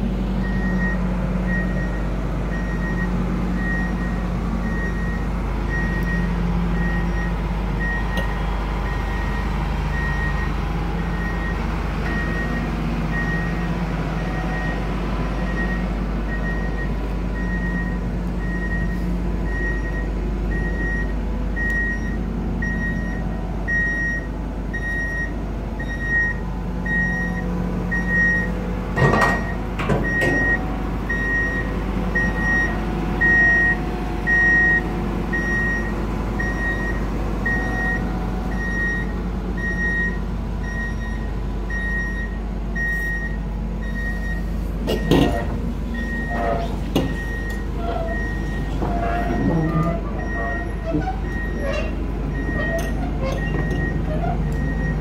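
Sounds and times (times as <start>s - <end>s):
low machinery rumble: 0.0s - 55.0s
machine warning beeper: 35.4s - 55.0s.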